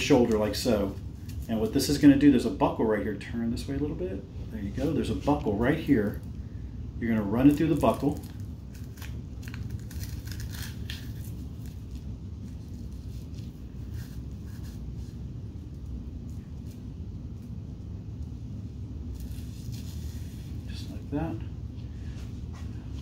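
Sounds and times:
low room hum: 0.0s - 23.0s
fabric strap rustling through buckle: 19.1s - 20.5s.

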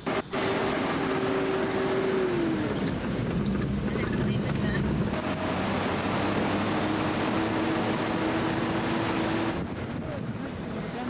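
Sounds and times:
vehicle engine from inside: 0.0s - 9.7s
dirt road noise: 0.0s - 11.0s.

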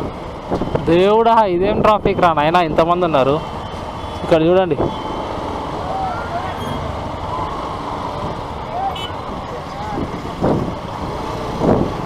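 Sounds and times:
vehicles idling: 0.0s - 12.0s.

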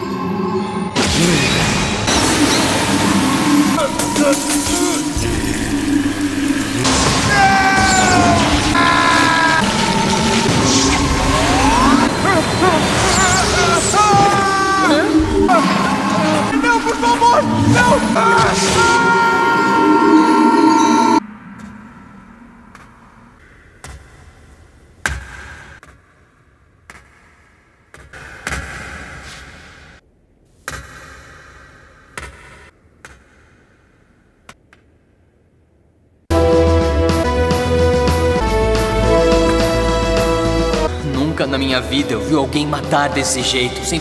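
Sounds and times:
dramatic music: 0.0s - 23.2s, 36.3s - 44.0s
person crying out: 6.8s - 9.6s, 11.4s - 20.2s.

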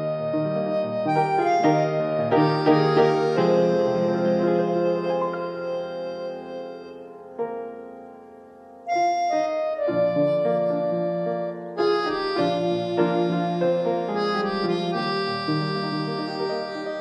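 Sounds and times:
keyboard music with held notes: 0.0s - 17.0s.

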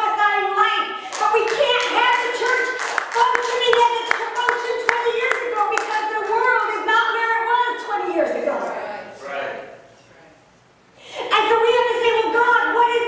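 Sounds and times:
hand clapping: 1.1s - 6.4s.

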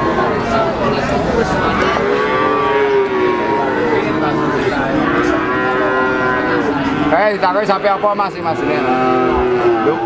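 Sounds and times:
cow mooing: 1.6s - 10.0s.

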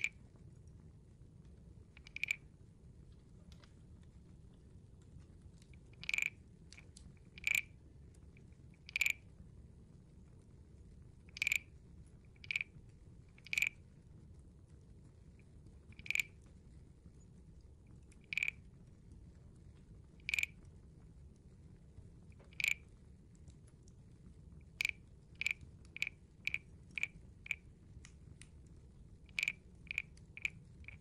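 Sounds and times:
wooden guiro scraped croaks: 2.0s - 2.5s, 6.0s - 6.4s, 7.3s - 7.7s, 8.8s - 9.2s, 11.3s - 11.7s, 12.4s - 12.7s, 13.4s - 13.8s, 16.0s - 16.4s, 18.2s - 18.6s, 20.2s - 20.6s, 22.4s - 22.8s, 24.7s - 27.6s, 29.3s - 31.0s.

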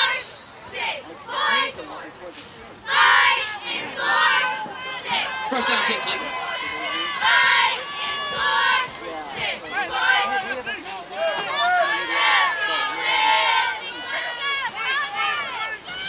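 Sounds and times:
crowd calling out: 2.8s - 16.0s
loud shouts: 2.9s - 16.0s.

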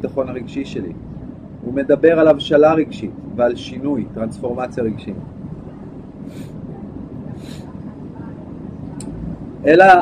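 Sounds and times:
low background rumble: 0.0s - 10.0s
soft hisses: 5.7s - 9.0s.

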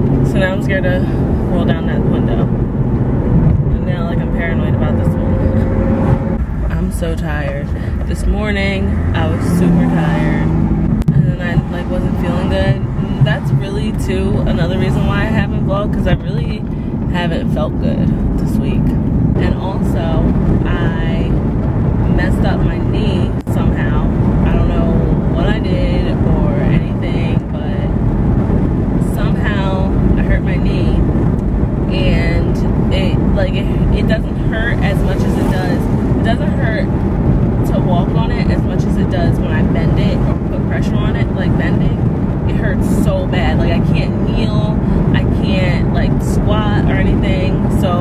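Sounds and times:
car road and engine noise: 0.0s - 48.0s
woman speaking: 0.3s - 2.5s, 3.7s - 5.7s, 6.7s - 10.5s, 11.1s - 21.4s, 22.0s - 28.0s, 29.0s - 31.0s, 31.9s - 36.9s, 37.6s - 48.0s.

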